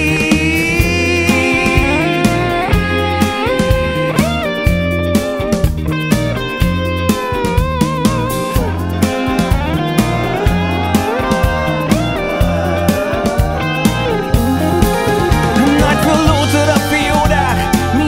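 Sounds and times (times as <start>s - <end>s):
bass guitar: 0.0s - 18.0s
steady drum beat: 0.0s - 18.0s
electric guitar solo: 0.1s - 18.0s.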